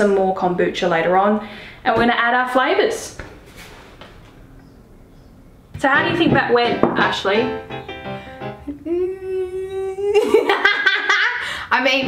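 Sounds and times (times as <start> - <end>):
woman singing long note: 8.6 - 10.2.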